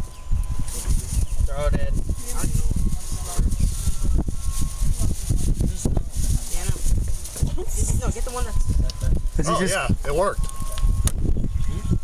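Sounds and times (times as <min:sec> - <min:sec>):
indistinct voices: 0:00.0 - 0:12.0
low rumbling microphone noise: 0:00.0 - 0:12.0.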